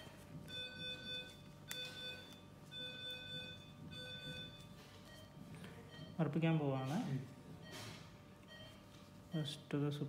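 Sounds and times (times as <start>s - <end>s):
electronic alarm beeping: 0.0s - 7.0s, 7.6s - 9.5s.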